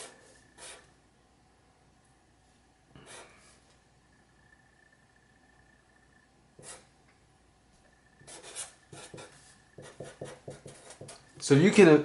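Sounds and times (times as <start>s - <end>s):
marker scratching on paper: 0.0s - 0.9s, 3.0s - 3.6s, 6.6s - 6.9s, 8.2s - 11.3s.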